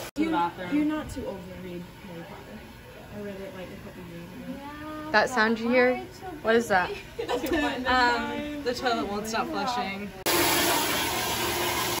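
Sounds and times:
toilet water rushing: 0:10.2 - 0:12.0.

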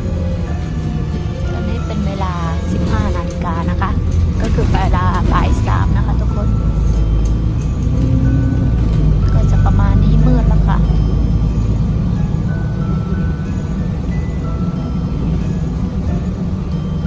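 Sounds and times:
bus engine and tyres rumbling: 0:00.0 - 0:17.0.

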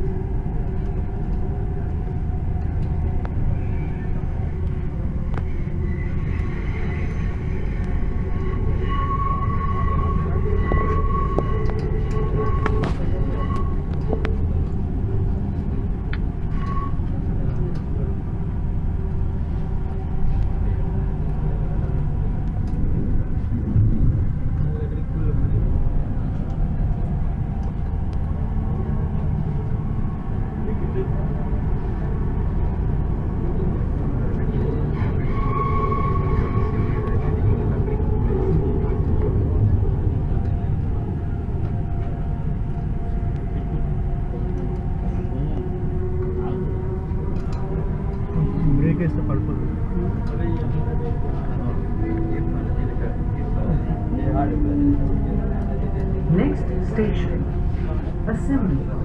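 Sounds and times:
electric train rumbling: 0:00.0 - 0:59.0.

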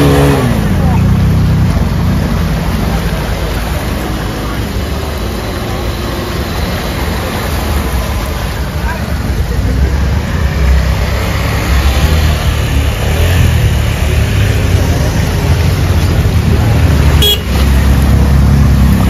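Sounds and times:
motorcycle engines running: 0:00.0 - 0:19.0
water splashing: 0:00.0 - 0:19.0.

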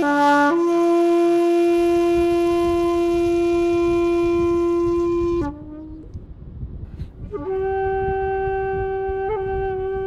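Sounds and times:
bamboo flute long note: 0:00.0 - 0:06.2, 0:07.2 - 0:10.0
low rumbling noise: 0:00.1 - 0:10.0.

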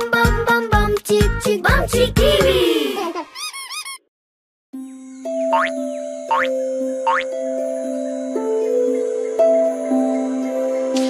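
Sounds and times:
gentle instrumental children's music: 0:00.0 - 0:04.0, 0:04.8 - 0:11.0
rising cartoon boing effects: 0:05.5 - 0:05.7, 0:06.3 - 0:06.5, 0:07.1 - 0:07.3.

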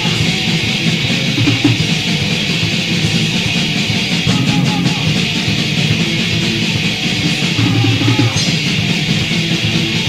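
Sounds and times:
electric guitar: 0:00.0 - 0:10.0
hardcore punk band playing: 0:00.0 - 0:10.0.

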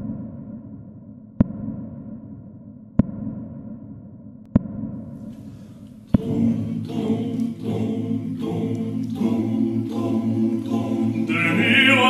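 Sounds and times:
choir singing sustained chords: 0:05.3 - 0:12.0
high voice singing with vibrato: 0:06.2 - 0:12.0.

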